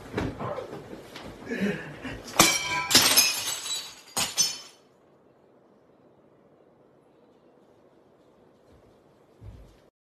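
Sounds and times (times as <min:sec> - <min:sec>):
glass pieces clinking: 0:02.3 - 0:05.0
glass shattering: 0:02.3 - 0:05.0.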